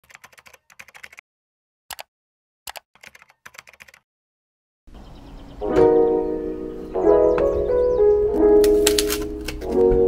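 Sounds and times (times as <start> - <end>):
typing on computer keyboard: 0.0 - 1.2, 2.7 - 4.0.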